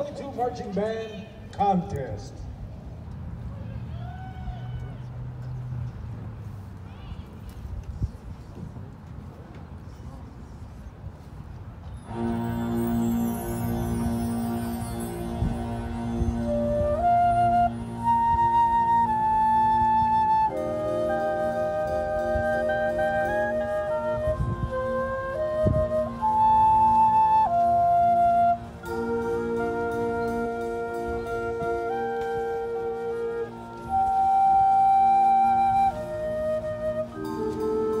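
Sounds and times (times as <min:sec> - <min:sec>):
high woodwind melody: 0:11.9 - 0:38.0
high sustained note: 0:12.0 - 0:19.4
marching band music: 0:12.0 - 0:38.0.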